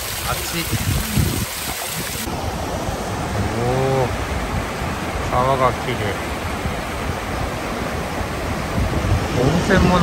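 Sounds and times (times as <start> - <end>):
river rushing over stones: 0.0 - 10.0.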